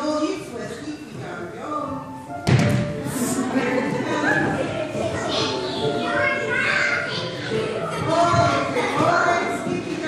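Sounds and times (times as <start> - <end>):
music: 0.7 - 10.0
children's voices: 3.2 - 10.0.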